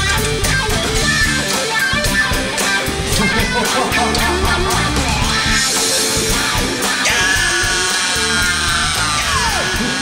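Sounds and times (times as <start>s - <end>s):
rock band playing loudly: 0.0s - 10.0s.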